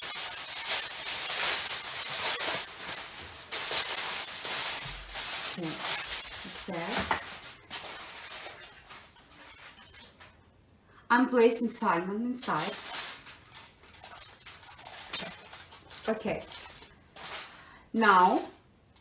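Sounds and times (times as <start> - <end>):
aluminum foil crinkling: 0.0 - 10.5, 12.3 - 19.0.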